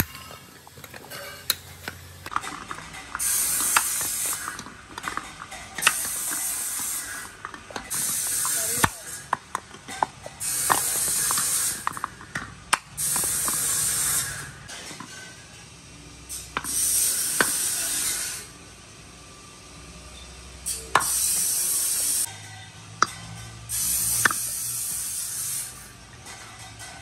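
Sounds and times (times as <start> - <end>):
tricycle wheels whirring: 0.0 - 15.3, 20.6 - 27.0.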